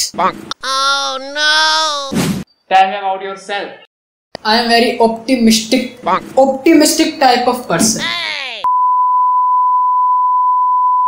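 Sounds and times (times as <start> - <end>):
censor bleep: 8.7 - 11.0.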